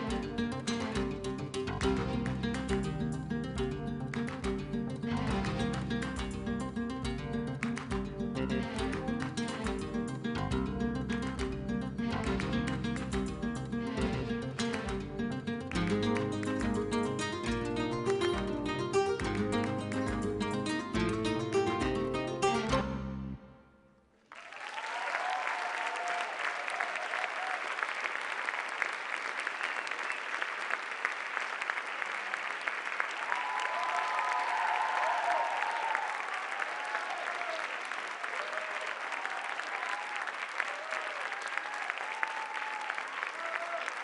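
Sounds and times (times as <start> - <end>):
audience clapping: 0.0 - 22.7, 24.2 - 44.0
whoops and cheers: 24.4 - 28.0, 33.2 - 44.0.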